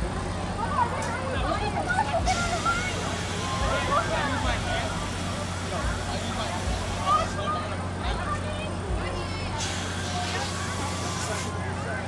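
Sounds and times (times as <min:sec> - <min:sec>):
crowd chatter: 0:00.0 - 0:12.0
low mechanical hum: 0:00.0 - 0:12.0.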